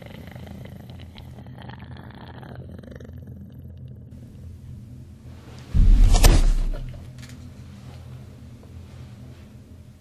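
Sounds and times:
low rumbling hum: 3.4s - 7.6s.

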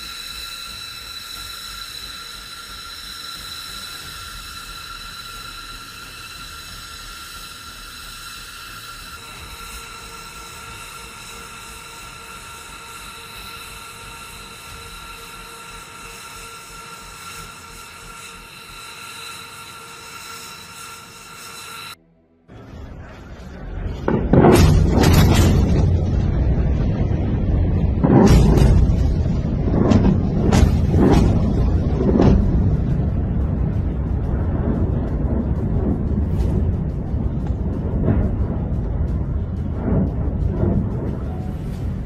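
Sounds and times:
jet engine turbine whine: 0.0s - 42.0s.

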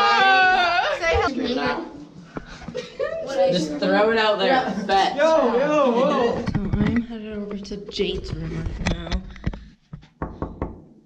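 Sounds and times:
knuckles knocking on door: 10.2s - 10.9s.

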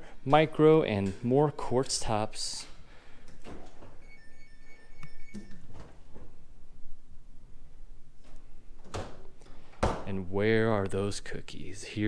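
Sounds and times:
refrigerator high tone: 3.7s - 6.6s.

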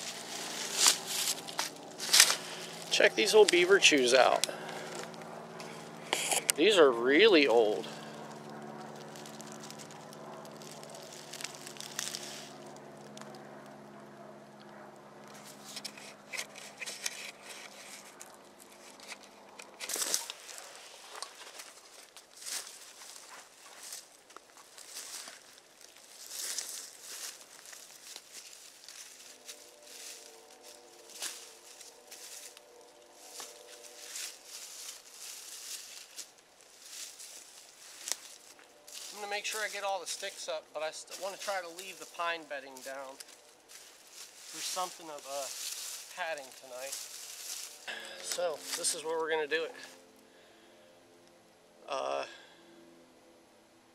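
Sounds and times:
sticks cracking: 0.0s - 3.6s
rustling in dry leaves: 0.0s - 13.4s, 15.3s - 50.0s
low multi-pitched drone: 0.0s - 53.9s.

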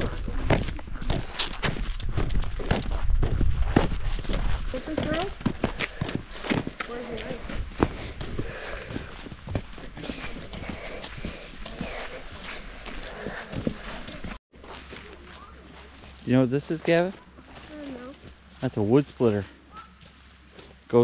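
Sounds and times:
footsteps crunching on dirt: 0.0s - 21.0s.

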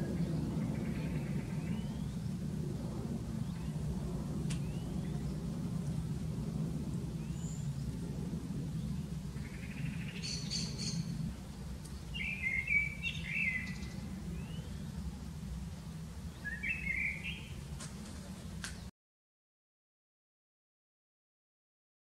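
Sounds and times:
birds chirping: 0.0s - 2.4s, 3.2s - 4.0s, 4.6s - 6.2s, 6.8s - 18.9s
steady low hum: 0.0s - 18.9s.

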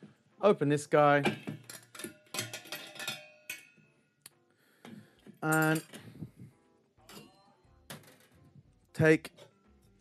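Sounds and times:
metallic clinks of keg lid: 1.2s - 3.8s.

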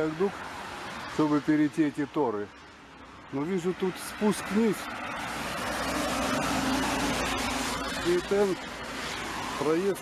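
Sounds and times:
tyres hissing on wet road: 0.0s - 10.0s.

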